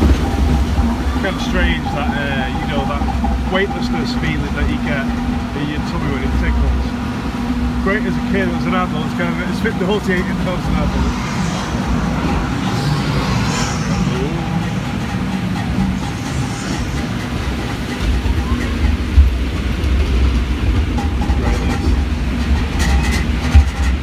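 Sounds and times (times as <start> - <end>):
lift conveyor rumbling and clattering: 0.0 - 24.0
log flume boat in trough: 0.0 - 24.0.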